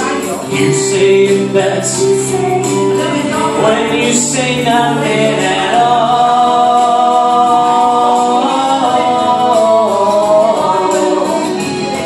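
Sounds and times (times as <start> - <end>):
backing music: 0.0 - 12.0.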